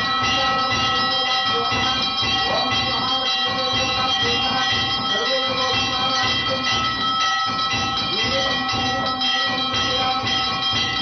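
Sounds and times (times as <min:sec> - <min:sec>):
temple bells ringing: 0:00.0 - 0:11.0.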